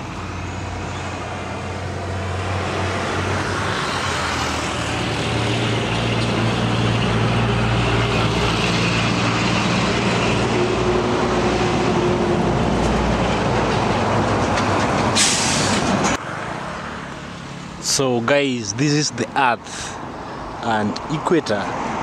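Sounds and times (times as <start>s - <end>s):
truck engine droning: 0.0s - 16.2s
road noise: 0.0s - 22.0s.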